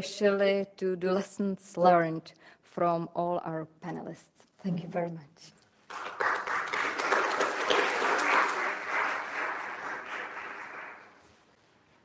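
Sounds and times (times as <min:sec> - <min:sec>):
audience applauding: 0:05.9 - 0:11.3.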